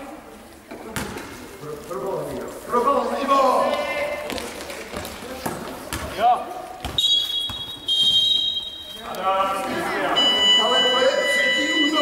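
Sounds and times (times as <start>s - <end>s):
basketball bouncing on court: 4.3s - 6.2s, 6.8s - 8.5s
referee's whistle: 7.0s - 9.1s, 10.2s - 12.0s.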